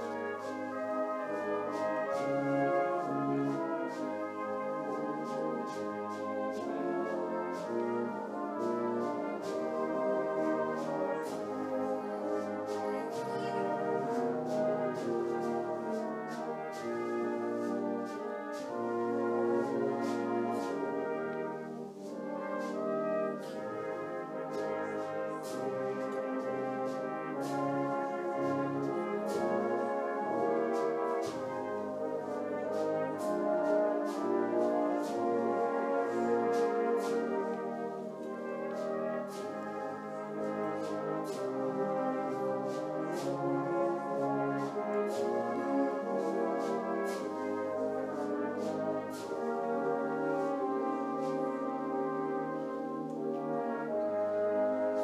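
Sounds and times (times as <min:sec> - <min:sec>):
brass band playing hymn: 0:00.0 - 0:55.0.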